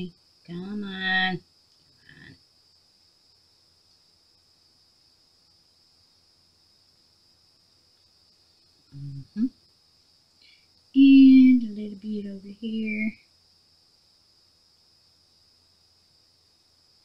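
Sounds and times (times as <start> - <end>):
faint high hiss: 0.0 - 17.0
woman humming or grunting: 9.0 - 9.5.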